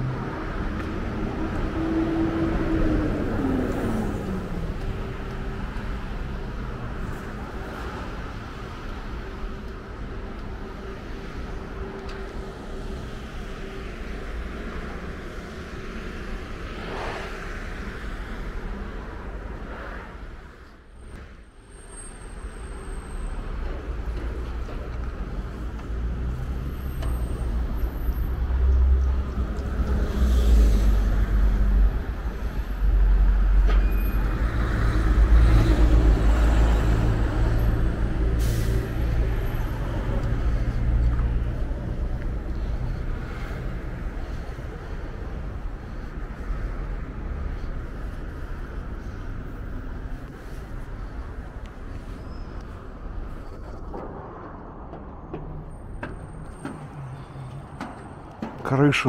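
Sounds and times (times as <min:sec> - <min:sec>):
street traffic: 0:00.0 - 0:59.0.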